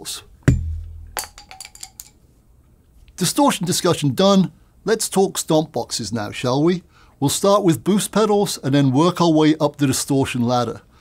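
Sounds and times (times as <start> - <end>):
low hum: 0.5 - 1.6.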